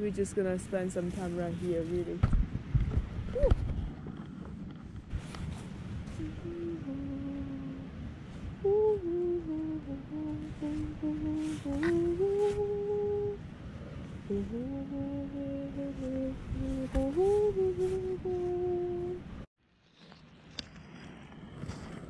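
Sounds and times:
person humming a slow tune: 0:06.0 - 0:13.5, 0:14.1 - 0:19.4.

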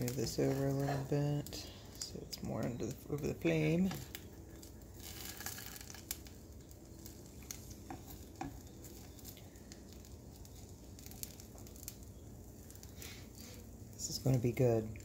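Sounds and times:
eggs sizzling in a pan: 0:00.0 - 0:15.0.

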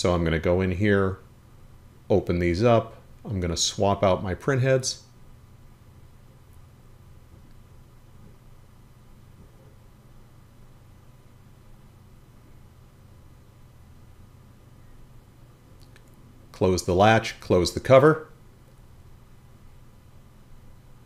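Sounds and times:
faint low hum: 0:00.0 - 0:21.0.

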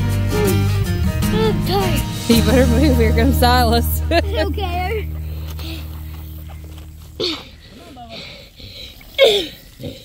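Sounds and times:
children calling out: 0:00.4 - 0:02.2.

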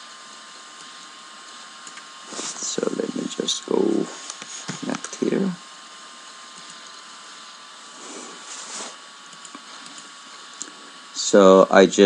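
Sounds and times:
faint steady hum: 0:00.0 - 0:12.0
microphone line hiss: 0:00.0 - 0:12.0.

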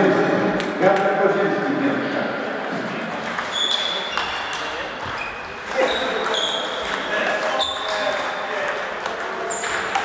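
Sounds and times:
background chatter echoing: 0:00.0 - 0:10.0
table tennis balls clicking: 0:02.6 - 0:10.0.

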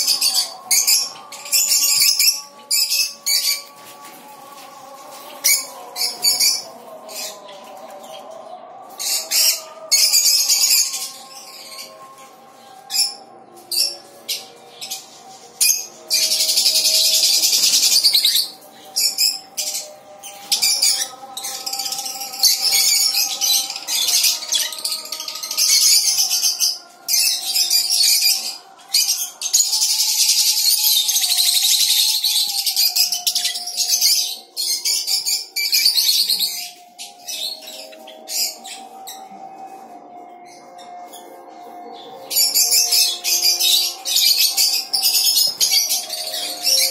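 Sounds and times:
parrots chattering and screeching: 0:00.0 - 0:46.9.

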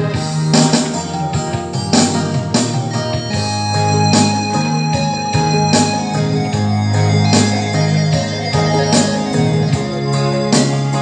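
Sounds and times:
electronic keyboard music: 0:00.0 - 0:11.0.

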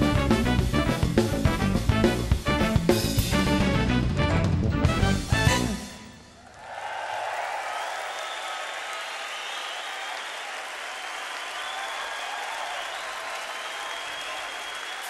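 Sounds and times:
audience applauding: 0:06.4 - 0:15.0.

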